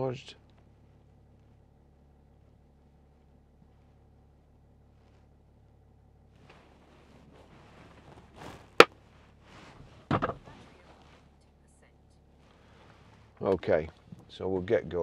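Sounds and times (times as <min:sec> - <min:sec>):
car engine idling: 0:00.0 - 0:15.0
rustling: 0:00.5 - 0:14.3.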